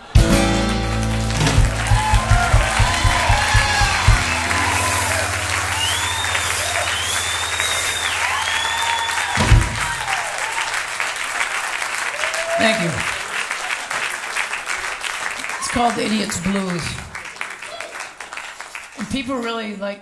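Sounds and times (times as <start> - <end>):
drum hits: 0.0 - 10.3
audience applauding and cheering: 0.0 - 19.0
band final chord ringing: 0.2 - 10.1
low held bass note: 0.9 - 10.1.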